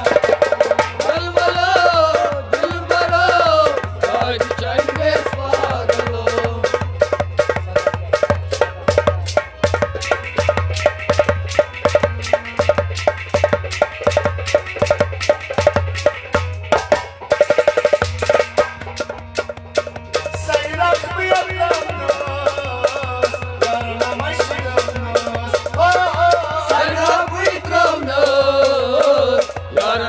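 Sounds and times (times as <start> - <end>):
fast hand percussion: 0.0 - 30.0
harmonium melody: 0.0 - 30.0.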